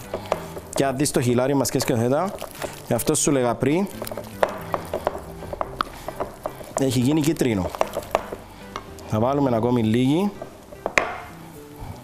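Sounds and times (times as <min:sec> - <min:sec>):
whisk beating batter: 0:00.0 - 0:08.5
whisk clicking against glass: 0:04.0 - 0:08.4.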